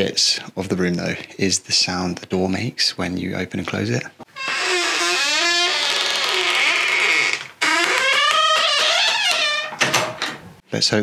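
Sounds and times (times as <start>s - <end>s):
door hinges creaking: 4.3s - 10.5s.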